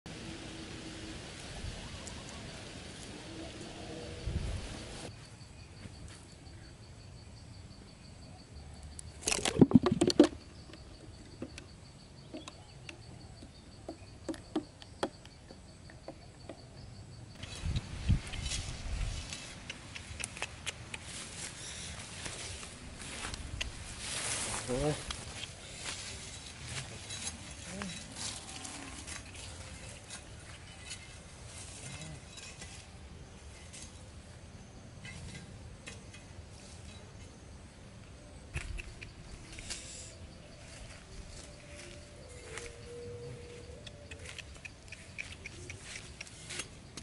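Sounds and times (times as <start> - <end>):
footsteps through grass: 17.6 - 20.2, 21.0 - 30.6, 40.6 - 42.8, 45.2 - 46.7.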